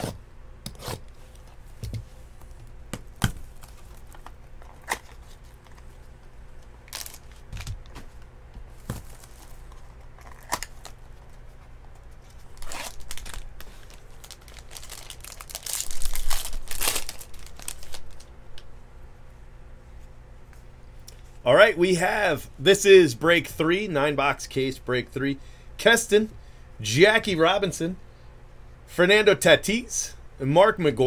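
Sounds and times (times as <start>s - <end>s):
wrapper crinkling and tearing: 6.8s - 7.9s, 8.9s - 11.3s, 12.2s - 18.3s.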